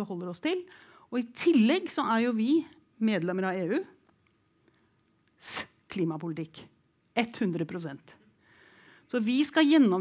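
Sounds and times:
woman speaking: 0:00.0 - 0:04.0, 0:05.4 - 0:08.2, 0:09.1 - 0:10.0.

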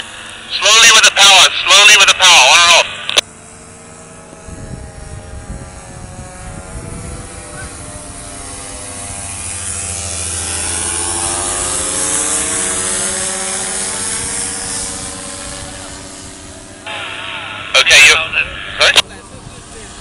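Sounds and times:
paramotor engine droning overhead: 0:00.0 - 0:20.0.

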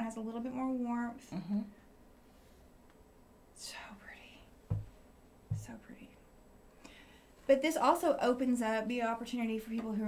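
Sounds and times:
person whispering: 0:01.3 - 0:01.7, 0:03.6 - 0:04.5
soft low bumps: 0:04.6 - 0:06.0.

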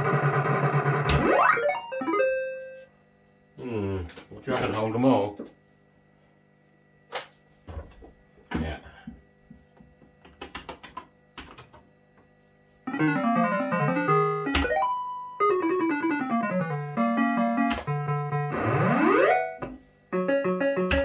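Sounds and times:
electronic beeping tune: 0:01.2 - 0:02.8.

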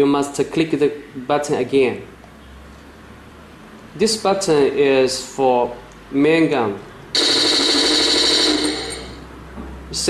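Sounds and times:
simulated gunfire rattle: 0:07.2 - 0:09.2.

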